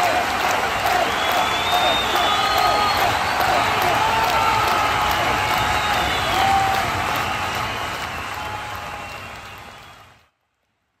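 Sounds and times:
crowd cheering: 0.0s - 10.4s
crowd clapping: 0.0s - 10.4s
shouts or whistles: 0.8s - 10.2s.

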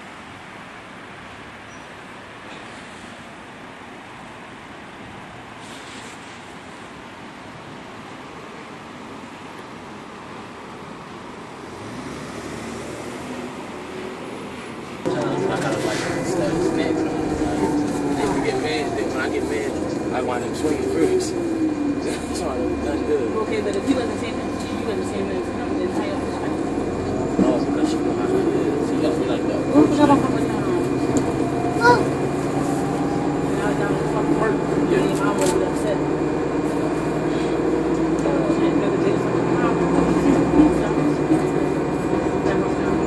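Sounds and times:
bus engine hum: 0.0s - 43.0s
road traffic noise: 0.0s - 43.0s
passengers talking: 13.3s - 43.0s.

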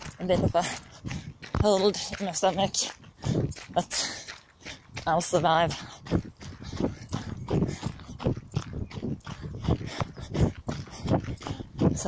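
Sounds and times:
runner breathing: 0.0s - 12.0s
runner's footfalls: 0.0s - 12.0s.

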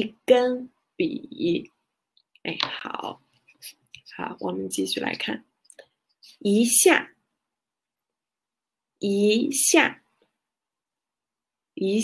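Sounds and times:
woman speaking: 0.0s - 1.8s, 2.4s - 5.5s, 6.2s - 7.2s, 9.0s - 10.1s, 11.8s - 12.0s.

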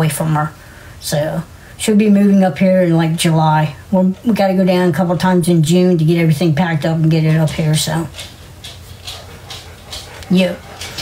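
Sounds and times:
faint dog sounds: 7.5s - 11.0s.

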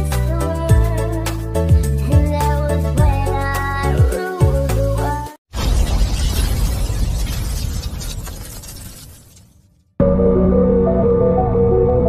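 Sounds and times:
noisy crash sound effect: 5.5s - 9.6s.

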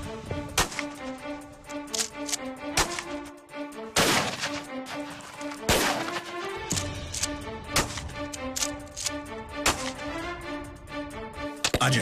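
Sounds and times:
background music: 0.0s - 12.0s
shotgun blasts with echo: 4.0s - 4.6s, 5.6s - 6.9s.

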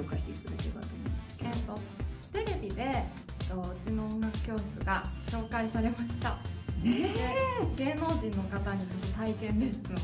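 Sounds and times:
background music: 0.0s - 10.0s
woman exclaiming and talking: 6.8s - 8.6s.

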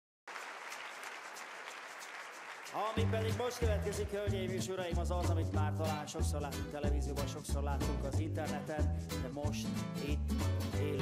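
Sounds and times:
audience applauding: 0.3s - 4.4s.

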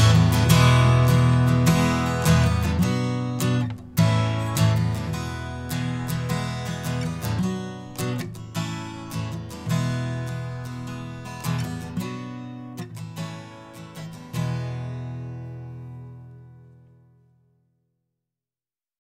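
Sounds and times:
strummed acoustic guitar: 0.0s - 17.4s.

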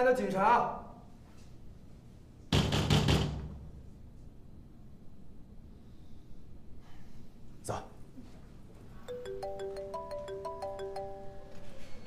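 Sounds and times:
knuckles knocking on metal door: 2.5s - 3.7s.

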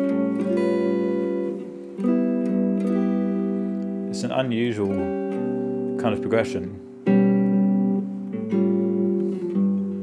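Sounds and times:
clean electric guitar chords: 0.0s - 10.0s.

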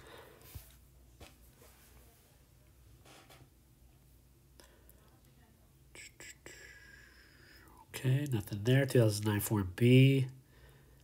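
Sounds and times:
man whispering: 5.9s - 10.4s.

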